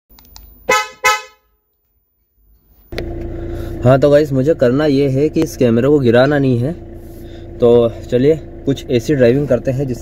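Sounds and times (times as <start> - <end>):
car horn toots: 0.7 - 1.6.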